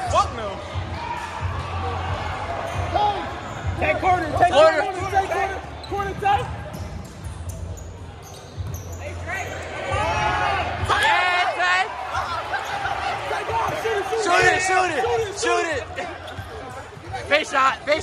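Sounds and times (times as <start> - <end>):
spectators shouting: 9.6 - 16.1.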